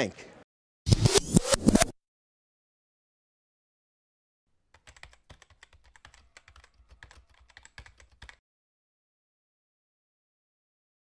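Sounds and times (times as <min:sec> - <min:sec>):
rapid typing on keyboard: 0:04.7 - 0:08.4.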